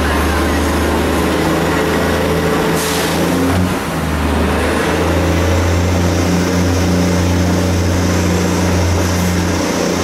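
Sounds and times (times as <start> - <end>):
train engine drone: 0.0 - 10.0
train running noise: 0.0 - 10.0.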